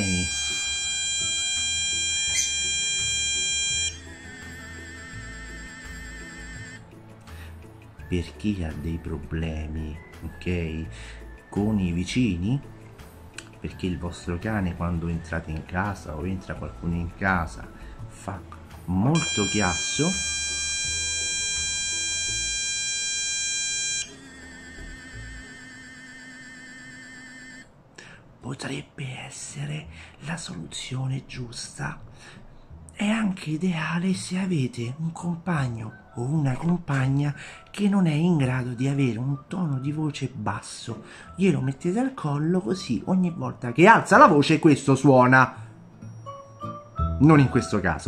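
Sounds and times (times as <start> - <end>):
electronic alarm tone: 0.0 - 6.9, 19.1 - 27.7.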